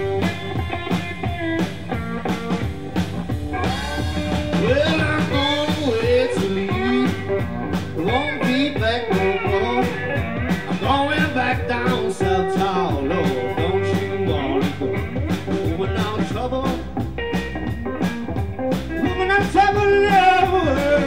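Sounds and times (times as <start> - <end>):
drum kit groove: 0.0 - 21.0
slide electric guitar: 0.0 - 21.0.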